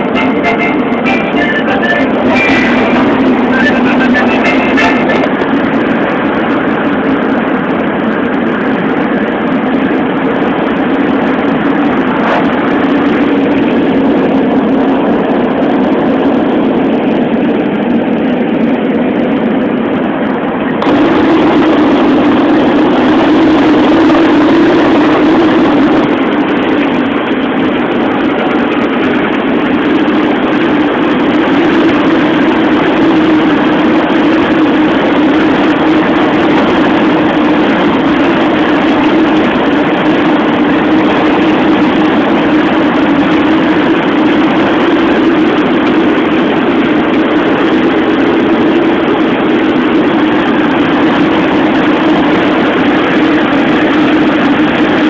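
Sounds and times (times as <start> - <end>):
vehicle engine and road noise: 0.0 - 55.0.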